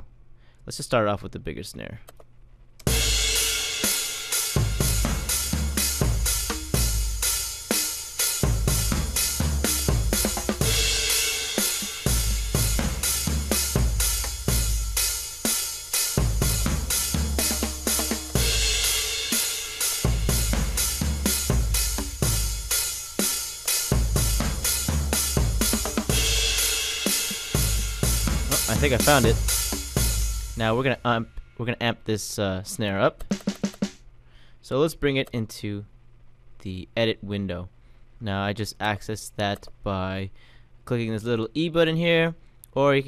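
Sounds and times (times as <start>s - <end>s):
programmed drum beat: 2.8s - 32.0s, 32.7s - 34.0s.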